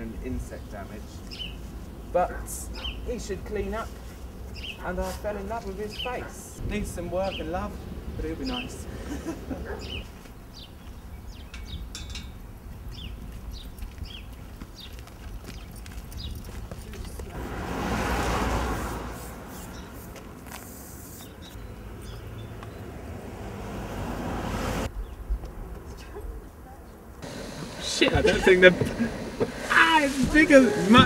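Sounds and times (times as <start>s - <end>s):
vehicle passing: 0.7s - 10.7s, 17.0s - 31.0s
wind rumble on microphone: 6.6s - 17.4s.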